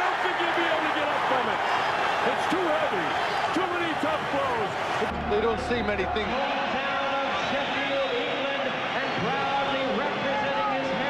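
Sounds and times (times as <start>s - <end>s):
arena crowd cheering and shouting: 0.0s - 11.0s.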